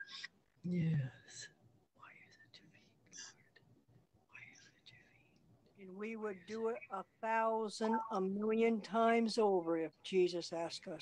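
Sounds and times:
person whispering: 0.0 - 3.6, 4.3 - 5.4.

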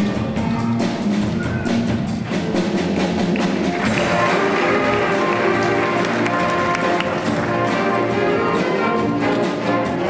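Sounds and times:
jazz band playing: 0.0 - 10.0.

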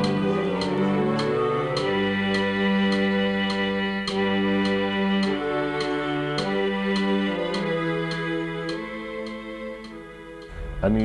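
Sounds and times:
steady tick: 0.0 - 8.8
organ-like synthesizer chords: 0.0 - 11.0.

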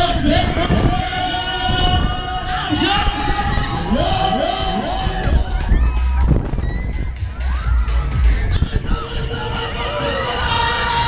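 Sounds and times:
fairground ride music with heavy bass: 0.0 - 11.0
riders screaming and whooping: 0.0 - 11.0.

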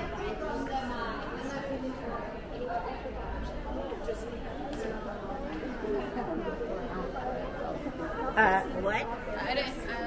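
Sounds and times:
chatter of many shoppers: 0.0 - 10.0.

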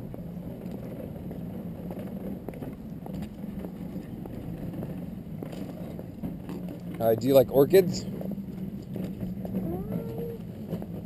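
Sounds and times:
footsteps on paved path: 0.0 - 11.0
low mechanical hum: 0.0 - 11.0.

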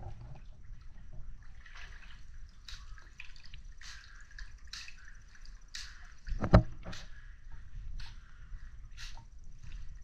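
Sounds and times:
water dripping into bathtub: 1.4 - 8.2.

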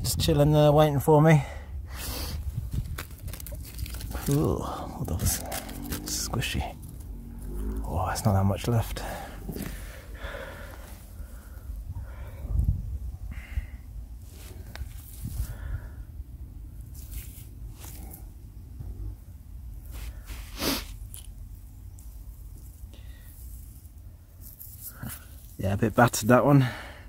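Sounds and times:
hand scraping through ash: 2.0 - 11.2, 19.8 - 26.4
low rumble: 2.4 - 19.8.

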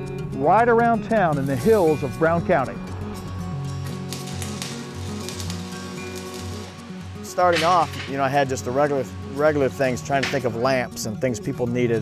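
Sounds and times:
background music with pulsing bass: 0.0 - 12.0
arc welding crackle: 1.4 - 2.1, 3.1 - 10.8.

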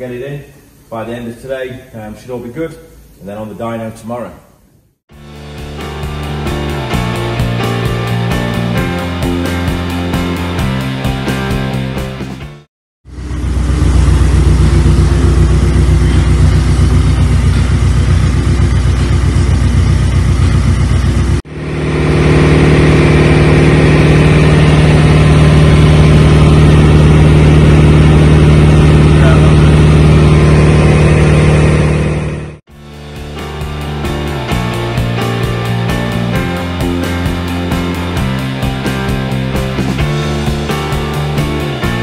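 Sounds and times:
music: 5.1 - 12.7, 32.7 - 42.0
car engine revving on a dyno: 13.1 - 32.7.

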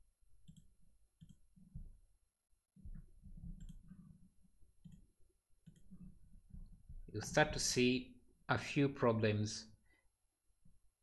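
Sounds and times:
computer mouse clicks: 0.4 - 1.7, 2.9 - 4.1, 4.8 - 6.0.

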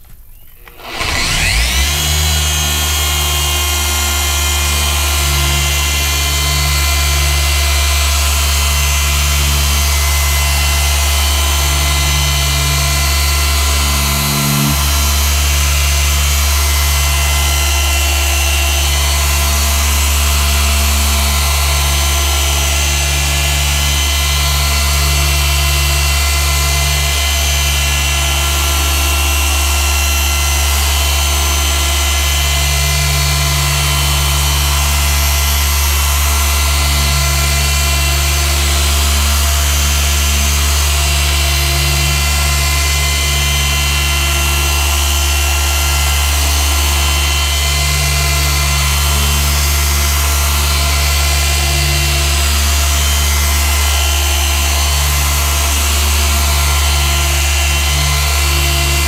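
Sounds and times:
polisher running: 0.6 - 59.0.

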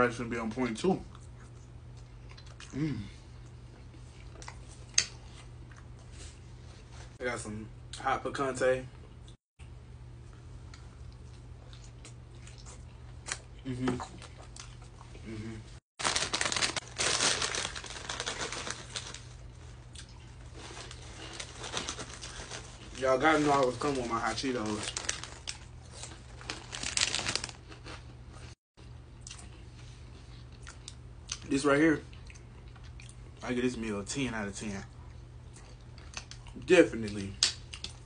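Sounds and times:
plastic snack bag crinkling: 16.0 - 19.5, 20.2 - 28.5.

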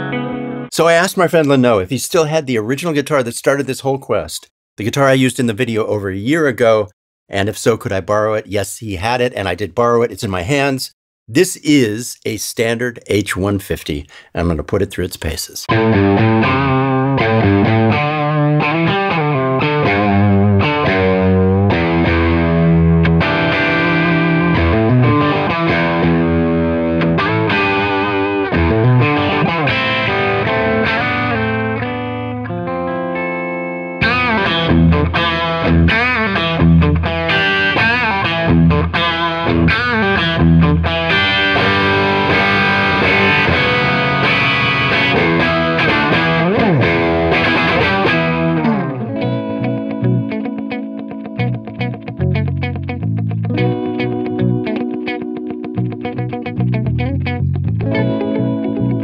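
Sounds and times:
distorted electric guitar lead: 0.0 - 0.8, 15.7 - 59.0.

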